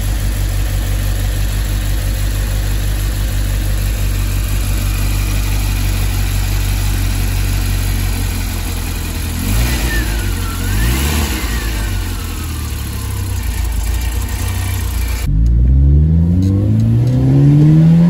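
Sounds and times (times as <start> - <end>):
car engine idling and revving: 0.0 - 18.0.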